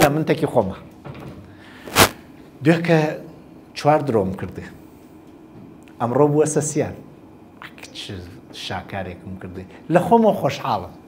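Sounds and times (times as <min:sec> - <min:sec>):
man speaking: 0:00.0 - 0:00.8, 0:07.6 - 0:11.0.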